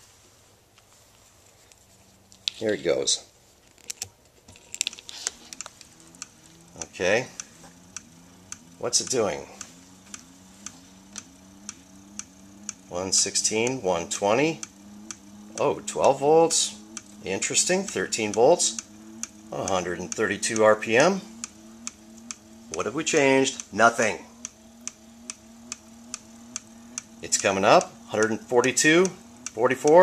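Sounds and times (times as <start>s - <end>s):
steady low hum: 0.0s - 30.0s
motor ticking: 4.9s - 30.0s.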